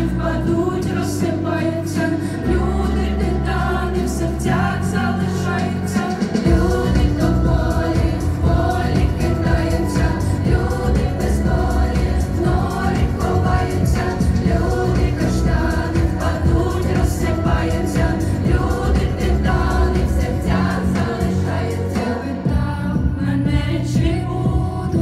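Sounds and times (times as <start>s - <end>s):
accompanying music: 0.0s - 25.0s
students singing together: 0.0s - 25.0s.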